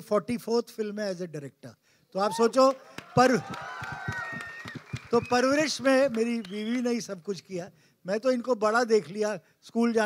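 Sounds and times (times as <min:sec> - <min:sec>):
man speaking into a microphone: 0:00.0 - 0:03.6, 0:05.1 - 0:10.0.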